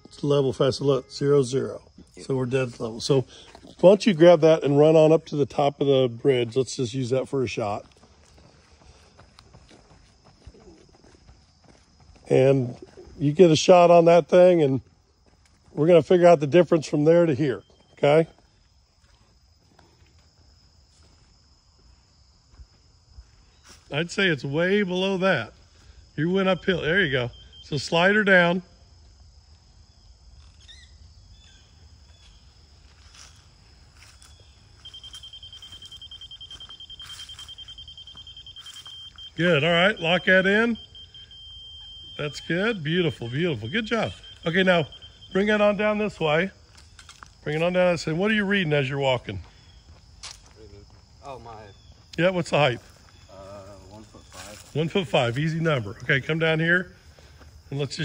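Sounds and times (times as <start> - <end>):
footsteps running on asphalt: 6.4 - 13.7, 14.4 - 16.2, 17.6 - 23.2, 49.3 - 52.1
bird chirps: 17.3 - 18.0, 26.4 - 28.2, 34.2 - 46.1
rapid high-pitched beeping: 34.9 - 46.6.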